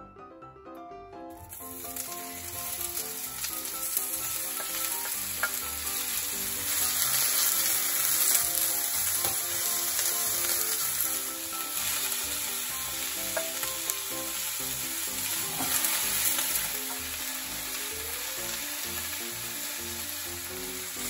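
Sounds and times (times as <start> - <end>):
soft background music: 0.0 - 21.0
food sizzling in a pan: 1.3 - 21.0.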